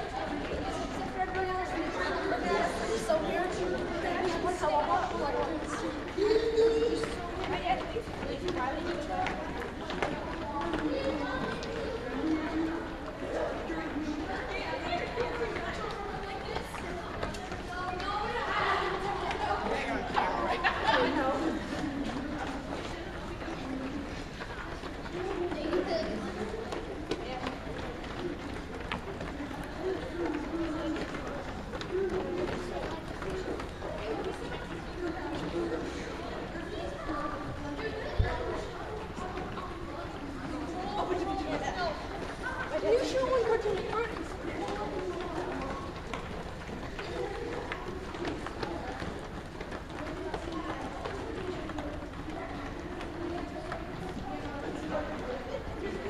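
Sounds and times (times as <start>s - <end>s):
children chattering: 0.0s - 56.0s.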